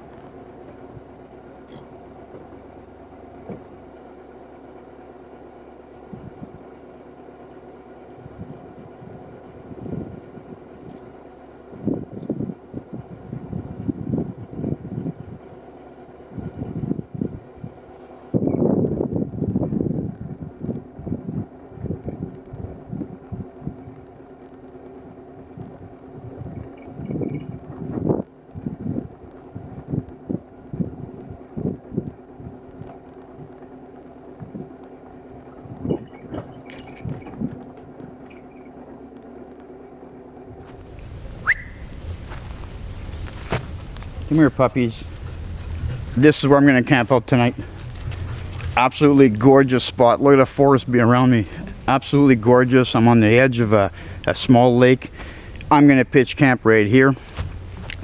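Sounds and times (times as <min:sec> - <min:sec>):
engine running steadily: 0:00.0 - 0:58.0
vehicle knocking and rattling: 0:00.0 - 0:58.0.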